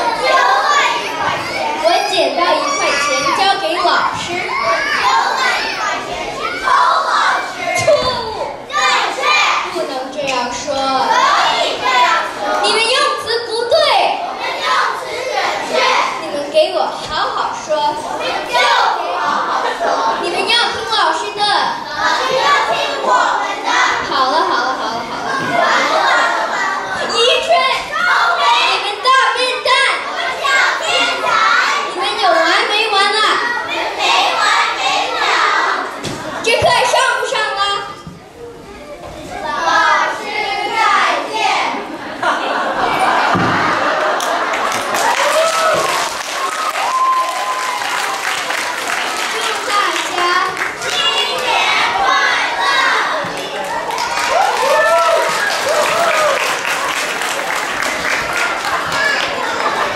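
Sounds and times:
children chattering: 0.0s - 59.9s.

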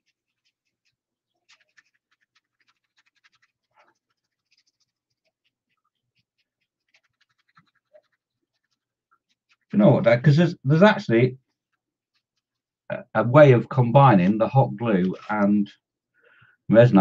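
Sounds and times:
small ticks: 0.0s - 9.8s, 11.4s - 12.9s
paintbrush rustling on paper towel: 0.0s - 12.8s.

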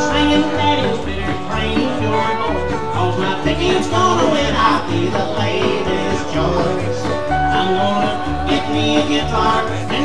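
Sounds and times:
rockabilly band playing: 0.0s - 10.0s
upright bass notes: 0.0s - 10.0s.

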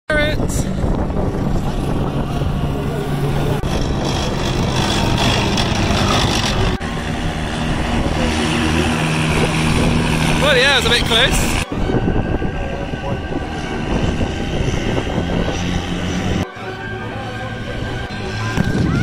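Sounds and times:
tracked vehicle engine hum: 0.1s - 19.0s
running gear rumble: 0.4s - 19.0s.

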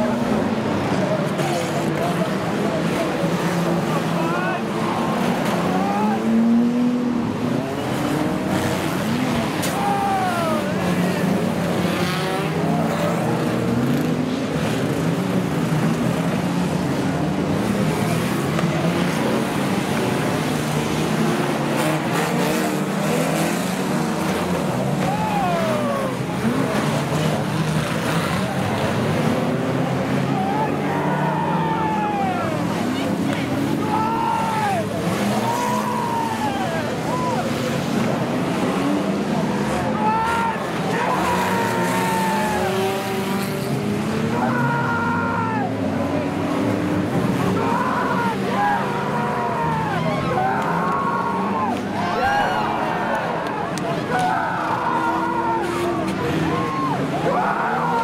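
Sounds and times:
racing car engines revving: 0.0s - 58.0s
cars banging together: 0.1s - 58.0s.

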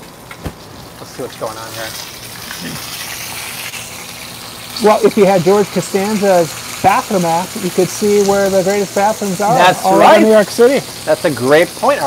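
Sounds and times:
meat sizzling in a skillet: 0.0s - 12.0s.

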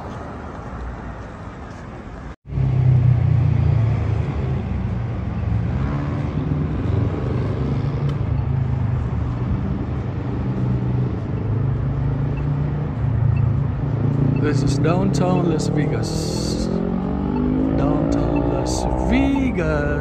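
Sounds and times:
traffic rumble of engines and tyres: 0.0s - 20.0s.

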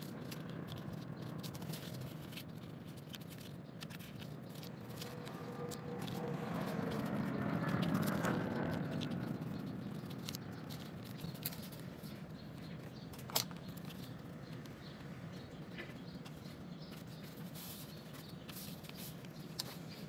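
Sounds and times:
paper folding and rustling: 0.0s - 14.8s, 15.6s - 20.0s.

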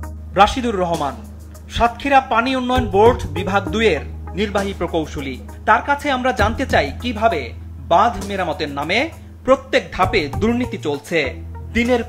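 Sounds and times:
background music: 0.0s - 12.0s
person speaking: 0.3s - 12.0s.

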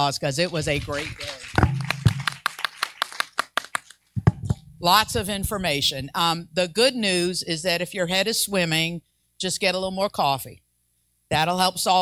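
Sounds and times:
hand claps: 0.9s - 4.6s.

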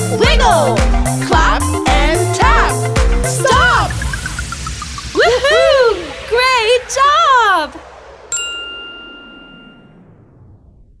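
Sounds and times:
bright bell-like ding: 8.3s - 10.0s.

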